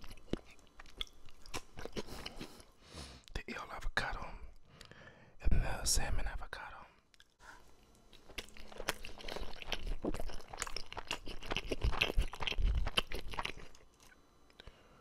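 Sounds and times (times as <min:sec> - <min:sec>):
chewing crunches close to microphone: 0:00.0 - 0:02.7, 0:07.2 - 0:14.2.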